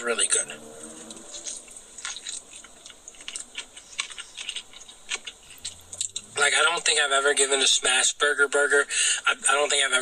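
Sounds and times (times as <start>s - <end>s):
person chewing food: 0.8s - 6.4s.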